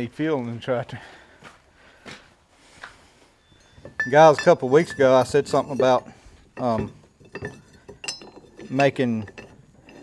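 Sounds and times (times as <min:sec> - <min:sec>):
faint footsteps on dirt path: 0:00.0 - 0:03.4.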